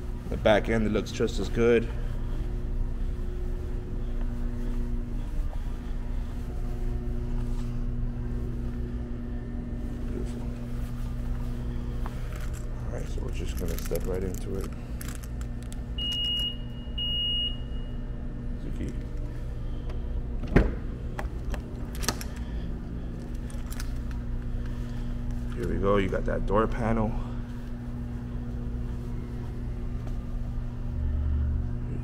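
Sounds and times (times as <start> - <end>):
steady low hum: 0.0 - 32.0.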